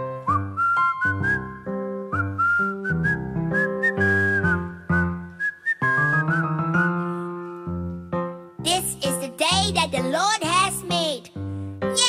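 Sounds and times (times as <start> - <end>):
upbeat music with whistled tune: 0.0 - 7.1.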